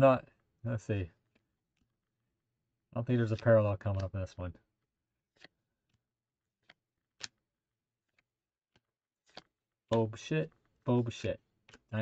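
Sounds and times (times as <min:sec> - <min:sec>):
paper cards clicking: 0:03.2 - 0:04.1, 0:05.3 - 0:06.0, 0:06.6 - 0:07.4, 0:08.0 - 0:12.0.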